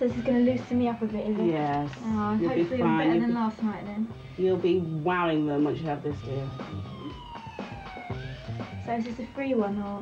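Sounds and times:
background music: 0:00.0 - 0:10.0
siren-like wail: 0:06.2 - 0:09.9.

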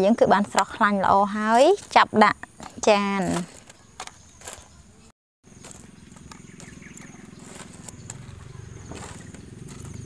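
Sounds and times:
low outdoor rumble: 0:05.5 - 0:10.0.

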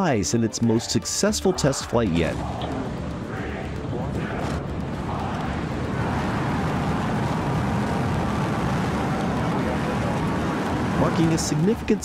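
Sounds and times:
rocket engines roaring: 0:00.7 - 0:12.0.

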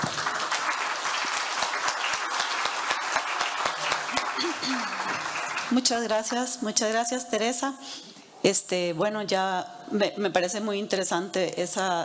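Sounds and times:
audience applauding: 0:00.0 - 0:06.1.

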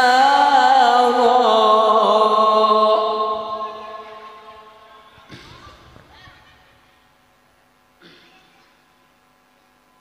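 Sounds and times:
amplified voice reciting with echo: 0:00.0 - 0:05.6.

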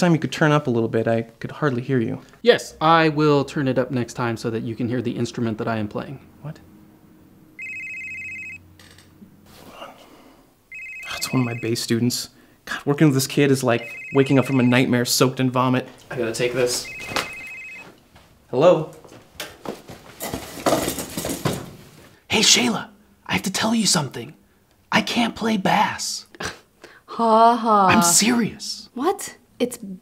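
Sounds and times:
phone ringtone trill: 0:07.6 - 0:08.6, 0:10.7 - 0:11.9, 0:13.8 - 0:14.9, 0:16.7 - 0:17.9
clattering and rustling handling noise: 0:15.9 - 0:22.2.

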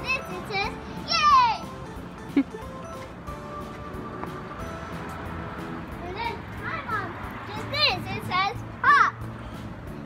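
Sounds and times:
child calling out: 0:00.0 - 0:01.7, 0:06.2 - 0:09.2
faint background music: 0:00.0 - 0:10.0.

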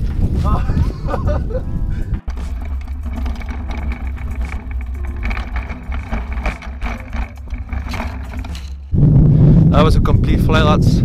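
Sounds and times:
wind on microphone: 0:00.0 - 0:04.6, 0:08.9 - 0:11.0
bike rolling with clicks and rattles: 0:00.0 - 0:08.9.

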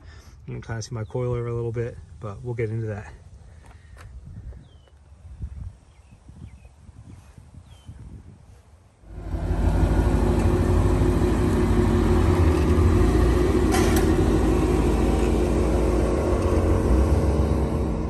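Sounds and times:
engine rumbling at low revs: 0:09.0 - 0:18.0.

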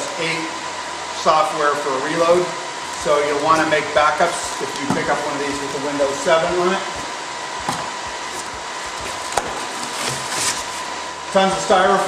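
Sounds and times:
faint steady whine: 0:00.0 - 0:12.0
server fans whooshing: 0:00.0 - 0:12.0
styrofoam packing rustling: 0:07.6 - 0:11.2.

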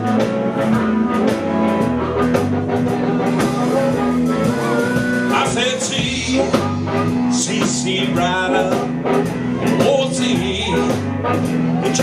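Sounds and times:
drum kit: 0:00.0 - 0:12.0
electric bass: 0:00.0 - 0:12.0
electric guitar: 0:00.0 - 0:12.0
harmonica bending notes: 0:00.0 - 0:12.0.

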